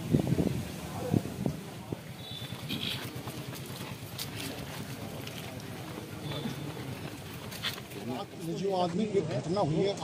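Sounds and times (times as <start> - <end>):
street hubbub: 0.0 - 10.0
faint voices: 0.6 - 10.0.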